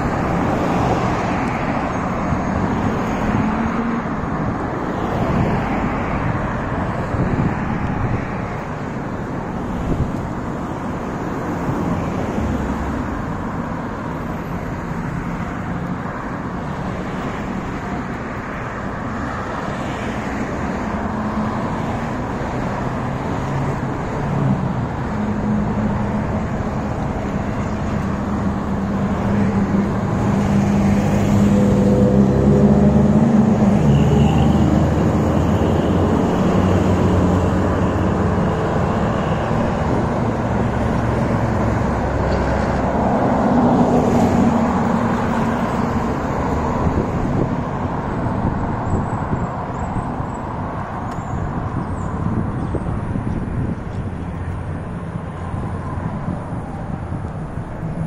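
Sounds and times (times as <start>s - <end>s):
road traffic passing: 0.0s - 58.0s.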